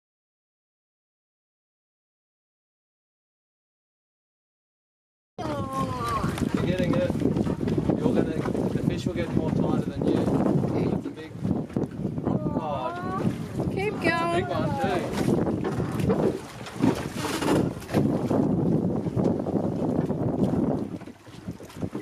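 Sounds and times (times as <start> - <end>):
wind buffeting microphone: 5.4 - 22.0.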